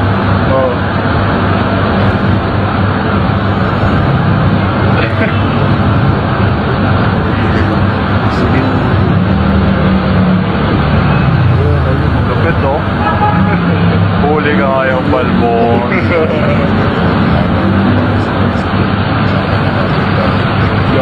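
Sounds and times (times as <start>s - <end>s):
indistinct voices: 0.0s - 21.0s
street traffic noise: 0.0s - 21.0s.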